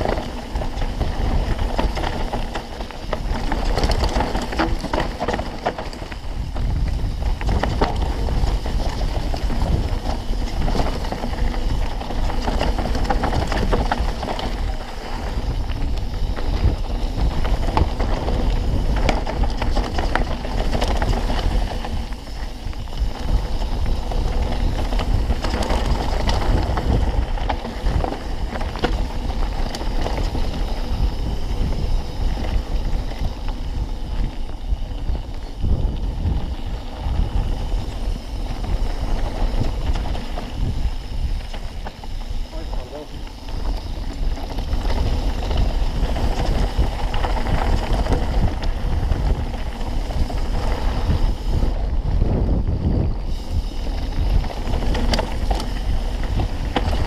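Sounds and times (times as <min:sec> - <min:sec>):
bike rattling and knocking: 0:00.0 - 0:57.0
bike tyres on dirt and stones: 0:00.0 - 0:57.0
wind buffeting microphone: 0:00.0 - 0:57.0.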